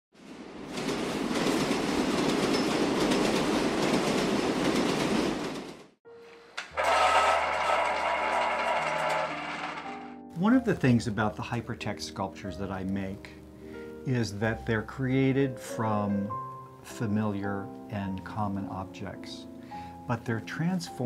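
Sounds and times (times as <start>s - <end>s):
subway train running: 0.2s - 5.9s, 6.6s - 9.4s.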